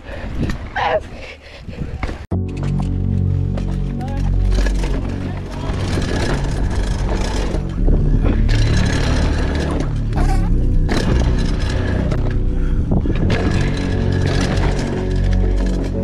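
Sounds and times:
wind on microphone: 0:00.0 - 0:02.3, 0:10.9 - 0:15.0
bike knocks and rattles: 0:03.6 - 0:16.0
bike tyres scraping over dirt: 0:03.6 - 0:16.0.

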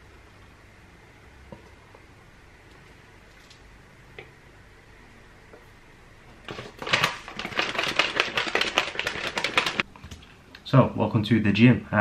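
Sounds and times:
plastic shaker bottle rattling: 0:06.5 - 0:09.9.

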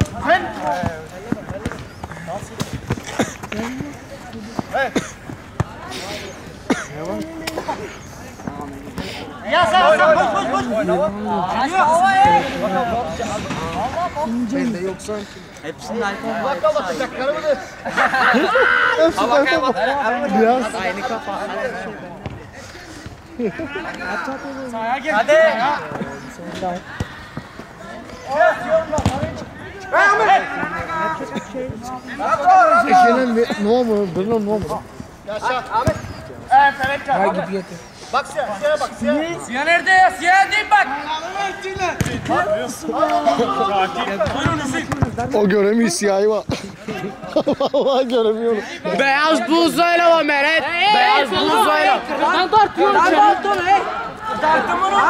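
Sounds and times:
players shouting: 0:00.0 - 0:15.0, 0:15.8 - 0:22.5, 0:23.5 - 0:46.0, 0:48.8 - 0:55.0
football kicks thudding: 0:28.9 - 0:29.4, 0:44.2 - 0:45.3
men shouting: 0:29.6 - 0:31.4, 0:48.9 - 0:55.0.

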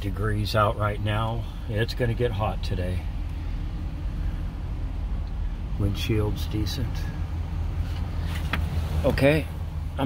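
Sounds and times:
pickup engine idling: 0:00.0 - 0:10.0.

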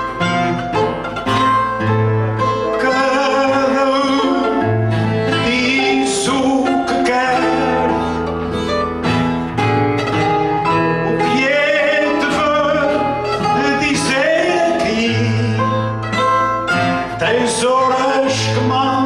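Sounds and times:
guitars strumming and picking: 0:00.0 - 0:19.0
man singing: 0:02.5 - 0:08.6, 0:11.0 - 0:19.0.

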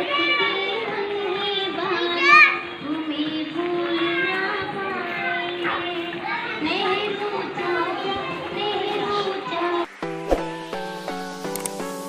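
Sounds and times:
children's voices: 0:00.0 - 0:09.9
children singing: 0:00.0 - 0:11.0.

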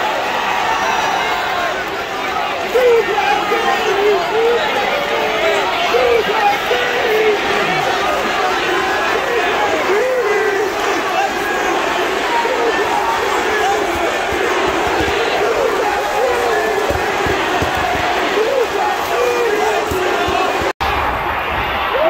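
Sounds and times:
arena crowd cheering and shouting: 0:00.0 - 0:22.0.

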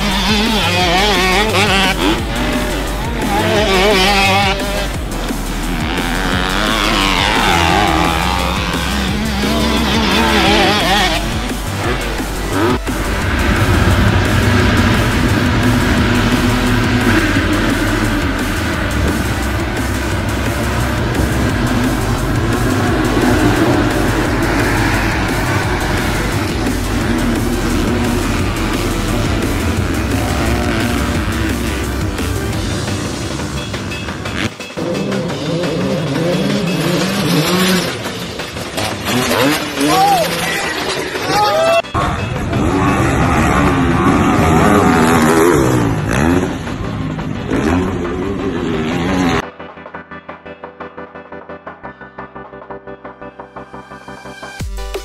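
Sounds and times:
dirt bike engines at full throttle: 0:00.0 - 0:50.8
background music: 0:00.0 - 0:55.0.

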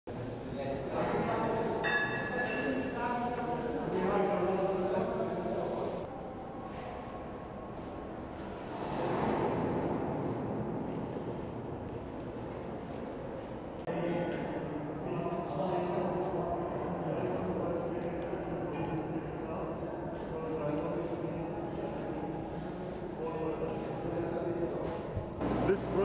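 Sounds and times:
construction site din: 0:01.3 - 0:02.9, 0:21.8 - 0:26.0.

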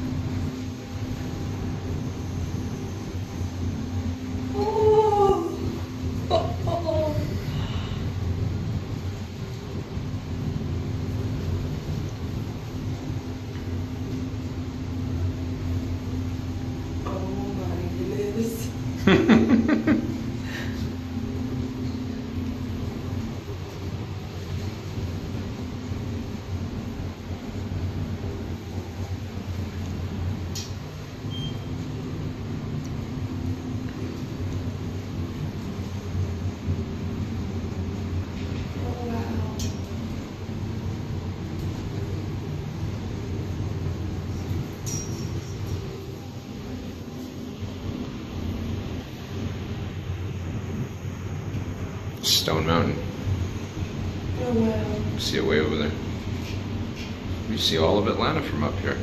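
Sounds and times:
elevator humming: 0:00.0 - 0:59.0.

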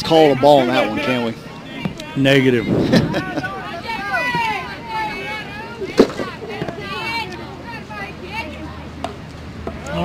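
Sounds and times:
people talking and calling: 0:00.0 - 0:10.0.

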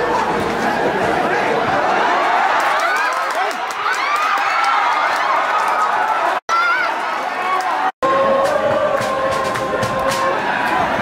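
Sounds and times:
crowd roar: 0:00.0 - 0:11.0
fans shouting: 0:00.0 - 0:11.0.

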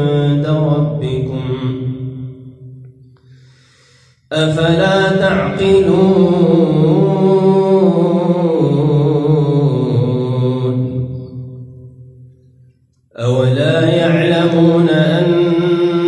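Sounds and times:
man reciting melodically: 0:00.0 - 0:02.6, 0:04.2 - 0:11.6, 0:13.1 - 0:16.0.

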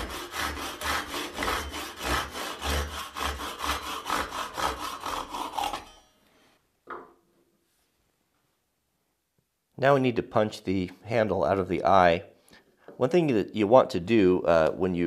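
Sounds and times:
handsaw cutting wood: 0:00.0 - 0:06.1.

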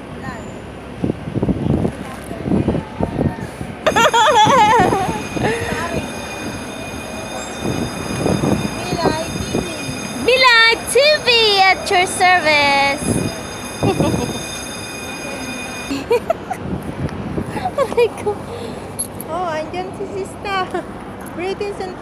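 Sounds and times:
steady high whine: 0:03.9 - 0:16.4.

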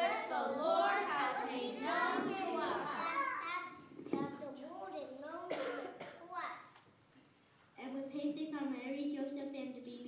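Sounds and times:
children speaking: 0:00.0 - 0:07.0
cough: 0:05.5 - 0:06.4.

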